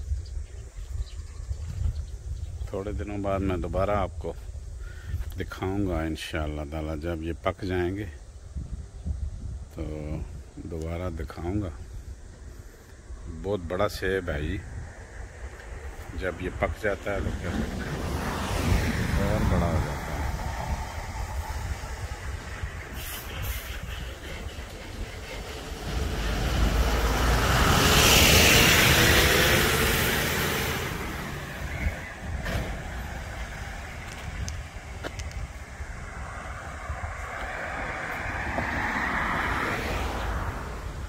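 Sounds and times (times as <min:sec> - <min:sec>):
steady low rumble: 0:11.7 - 0:38.6
road vehicle passing: 0:14.4 - 0:41.0.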